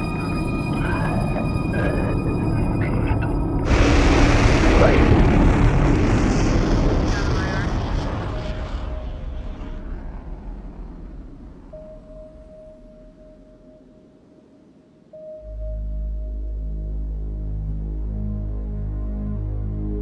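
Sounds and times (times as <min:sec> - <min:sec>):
thin steady tone: 0:00.0 - 0:03.8
low synth drone: 0:00.0 - 0:20.0.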